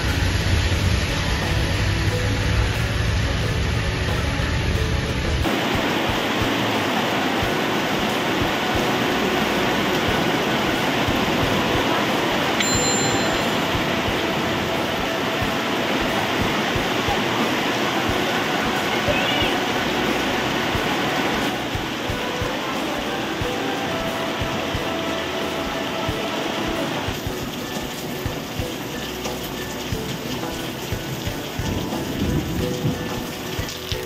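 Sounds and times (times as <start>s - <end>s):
heavy rain pouring: 0.0s - 34.0s.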